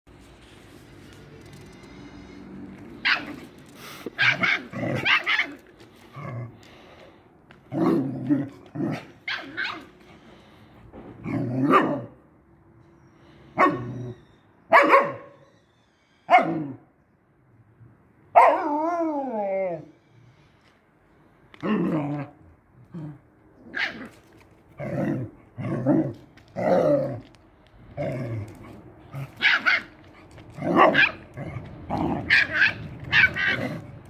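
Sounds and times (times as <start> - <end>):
dog barking and growling: 2.9 - 6.6, 7.7 - 10.0, 11.2 - 12.2, 13.6 - 15.3, 16.3 - 16.8, 21.6 - 27.3, 27.9 - 34.0.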